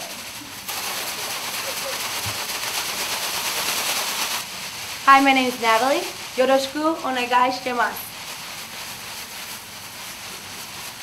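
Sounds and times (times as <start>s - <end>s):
plastic pom-poms crinkling: 0.0s - 11.0s.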